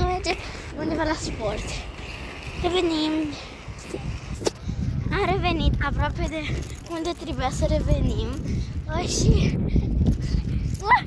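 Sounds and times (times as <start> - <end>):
boy speaking: 0.0 - 4.2, 5.0 - 9.7, 10.8 - 11.0.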